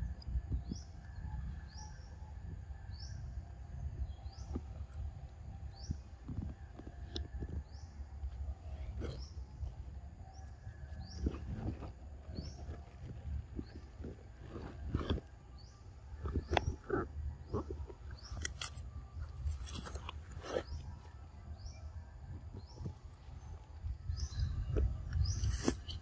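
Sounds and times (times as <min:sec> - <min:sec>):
crackling clicks and rustles: 0:03.9 - 0:26.0.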